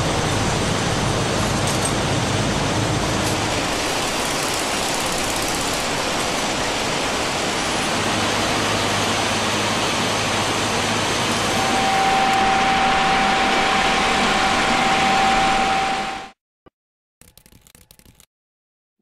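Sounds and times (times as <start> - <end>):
loud machinery noise: 0.0 - 16.4
thin steady whine: 0.0 - 16.4.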